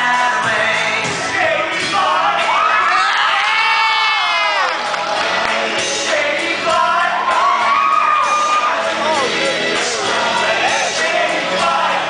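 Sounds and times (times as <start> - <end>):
young men singing: 0.0 - 3.6, 4.5 - 12.0
crowd cheering and whooping: 2.0 - 5.6, 6.7 - 9.3.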